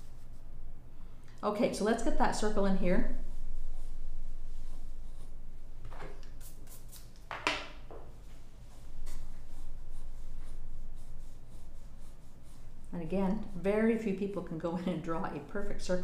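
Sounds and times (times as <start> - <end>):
steady low hum: 0.0 - 16.0
pencil scratching on paper: 9.3 - 12.7.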